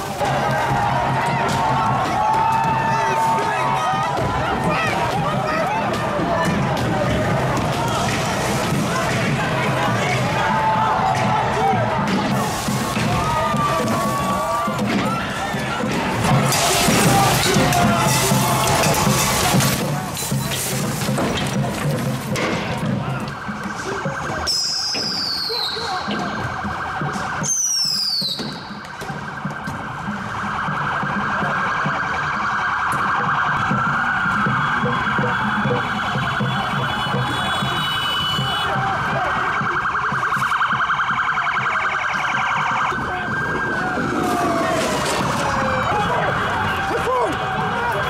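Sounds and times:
police sirens wailing: 0.0 - 48.0
street crowd noise: 0.0 - 48.0.

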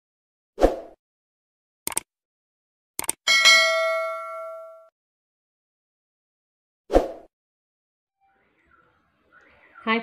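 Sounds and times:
mouse clicks: 1.9 - 2.1
notification bell ding: 3.3 - 4.9.

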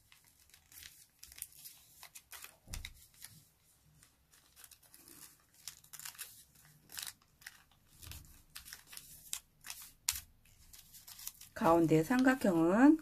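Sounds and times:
paper crinkling while folded: 0.0 - 13.0.

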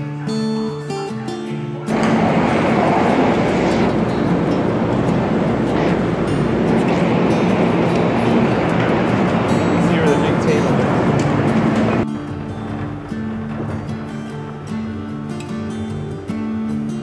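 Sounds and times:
voices of people: 1.1 - 12.0
train rumble and hiss: 1.9 - 16.9.

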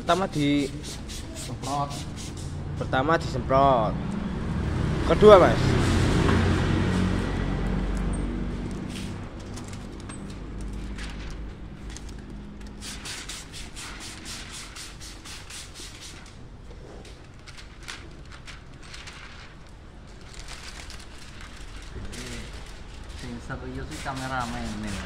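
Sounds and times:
plastic film crackling: 8.6 - 13.0, 17.1 - 25.0.

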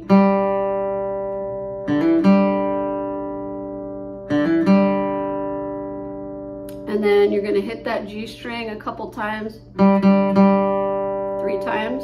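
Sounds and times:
acoustic guitar notes: 0.0 - 12.0.

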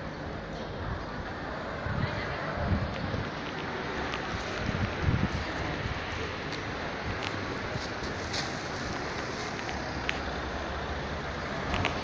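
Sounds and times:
road traffic hiss: 0.0 - 12.0.

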